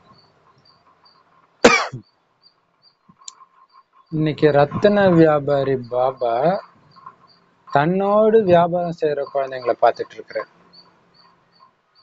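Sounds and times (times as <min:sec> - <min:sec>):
faint high chirps: 0:00.0 - 0:12.0
man coughing: 0:01.6 - 0:02.0.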